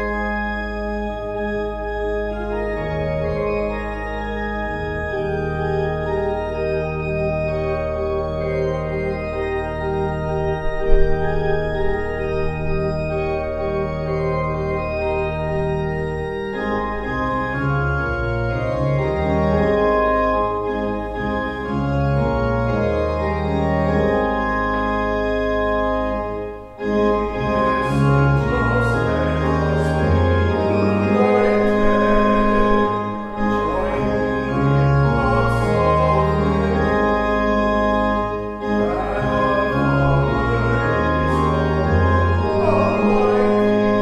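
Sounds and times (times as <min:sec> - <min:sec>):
church organ playing a hymn: 0:00.0 - 0:44.0.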